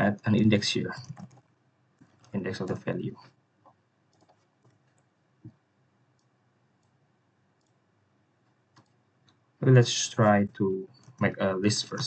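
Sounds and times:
faint keyboard keystrokes: 0.9 - 3.3, 4.1 - 5.1, 8.7 - 9.4.

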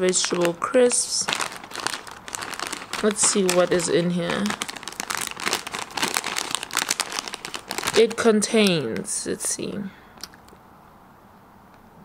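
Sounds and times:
crisp packet crinkling: 0.0 - 9.6.

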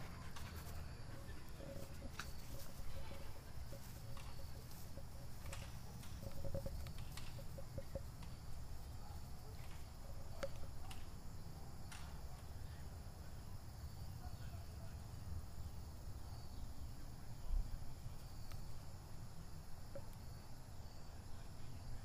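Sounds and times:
high insect hum: 0.0 - 22.0.

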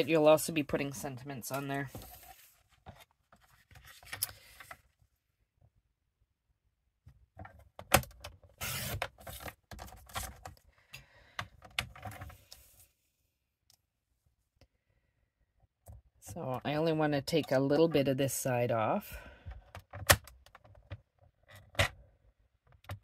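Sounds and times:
paper rustling and scraping: 1.7 - 4.8.

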